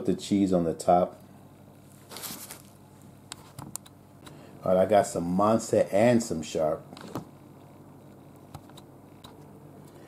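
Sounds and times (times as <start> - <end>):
paper wrapper rustling: 2.0 - 2.8.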